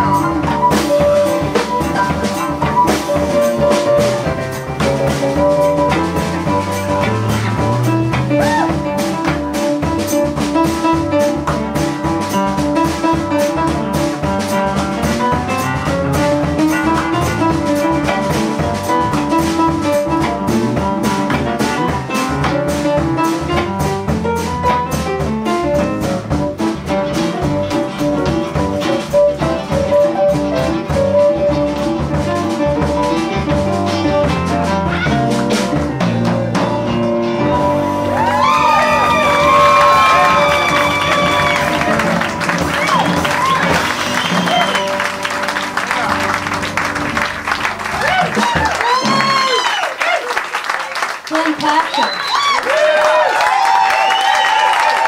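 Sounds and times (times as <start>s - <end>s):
guitar: 0.0s - 49.9s
drums: 0.0s - 55.0s
upright piano: 0.0s - 55.0s.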